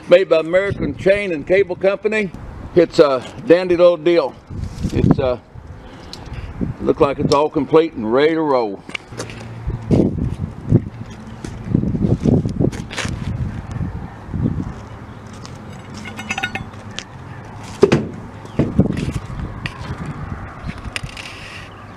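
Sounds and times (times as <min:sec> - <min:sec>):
light metallic clinks: 0:15.7 - 0:16.8.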